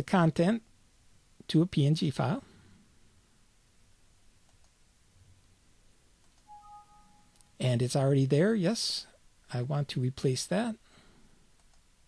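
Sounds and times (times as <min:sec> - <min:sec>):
faint mouse clicks: 0:04.4 - 0:04.8, 0:06.2 - 0:06.5, 0:11.5 - 0:11.9
two-tone alert chime: 0:06.5 - 0:07.4.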